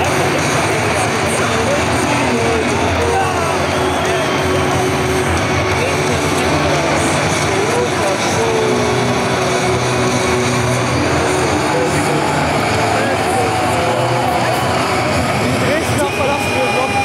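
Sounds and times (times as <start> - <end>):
stadium crowd cheering and singing: 0.0 - 17.0.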